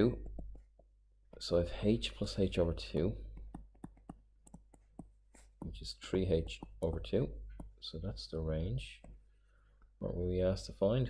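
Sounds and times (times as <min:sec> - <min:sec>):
stylus tapping on tablet screen: 0:00.0 - 0:01.6, 0:03.2 - 0:07.9, 0:08.9 - 0:09.4.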